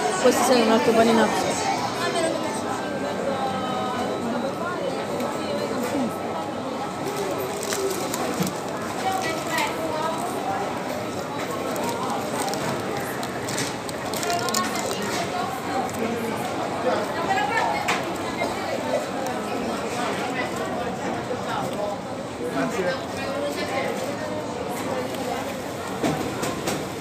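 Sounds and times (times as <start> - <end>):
background chatter: 0.0 - 27.0
paper wrapper crinkling: 7.1 - 9.8, 11.6 - 15.2.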